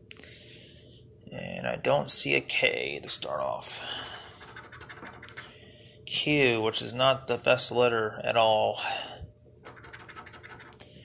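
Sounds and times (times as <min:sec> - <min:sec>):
coin scratching lottery ticket: 0:04.4 - 0:05.4, 0:09.6 - 0:10.8.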